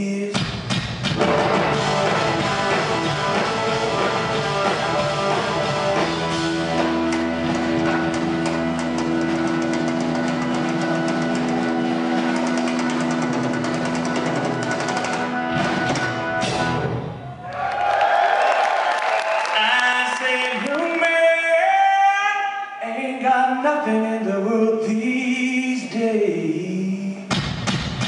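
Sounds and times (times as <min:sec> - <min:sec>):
drum rolls and cymbals: 0:00.3 - 0:17.4, 0:27.3 - 0:28.0
live rock band playing: 0:00.6 - 0:17.4
electric guitar sustained notes: 0:01.2 - 0:17.3.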